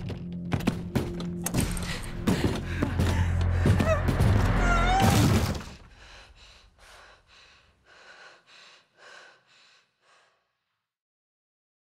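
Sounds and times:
person panting: 0:01.6 - 0:04.1, 0:05.8 - 0:10.6.

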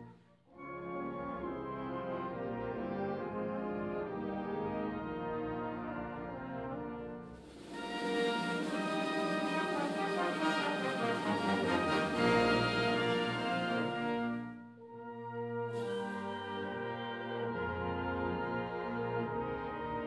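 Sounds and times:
wind band playing: 0:00.0 - 0:20.0.

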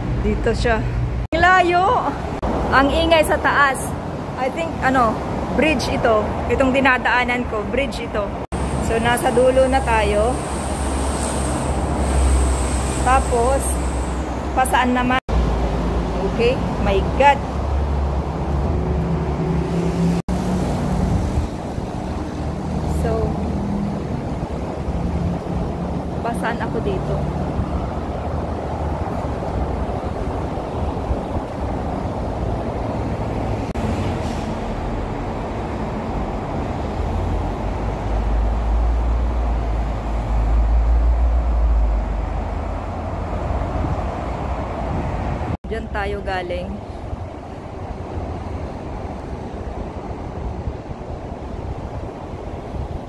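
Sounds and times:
road traffic: 0:00.0 - 0:53.0.

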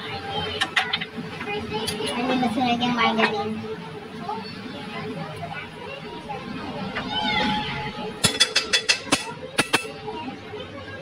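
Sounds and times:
children's voices and chatter: 0:00.0 - 0:11.0
child's high call: 0:05.5 - 0:08.2.

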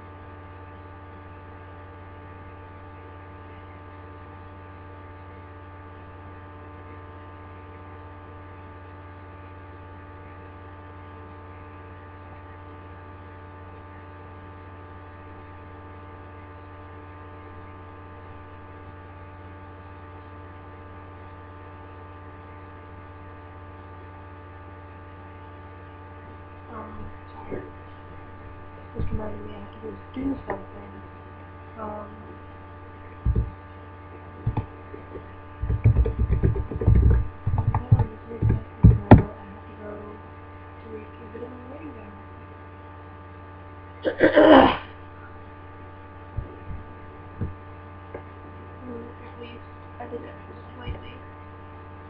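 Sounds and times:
electrical hum: 0:00.0 - 0:52.0.

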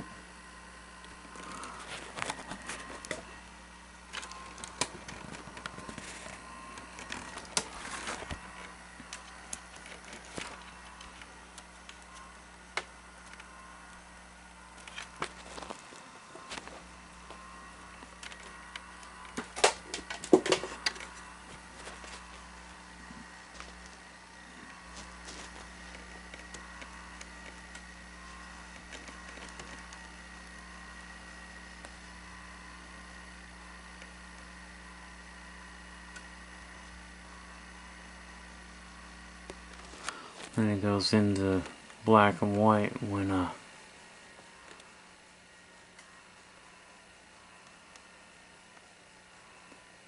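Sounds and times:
electrical hum from machine: 0:00.0 - 0:50.0.

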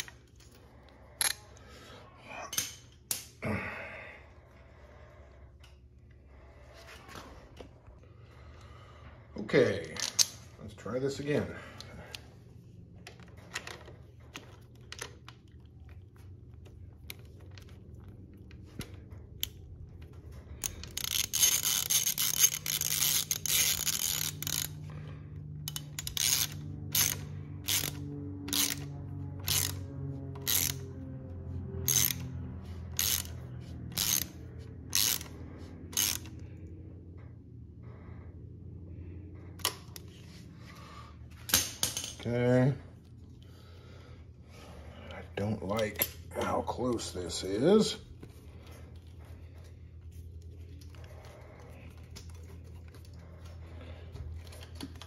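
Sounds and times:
socket ratchet clicking: 0:20.6 - 0:24.8, 0:25.6 - 0:30.9, 0:31.8 - 0:32.3, 0:33.0 - 0:36.4.

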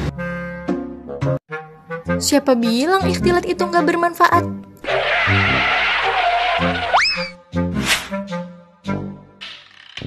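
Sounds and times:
background music: 0:00.0 - 0:10.0
tyre screech skid effect: 0:04.8 - 0:07.4.

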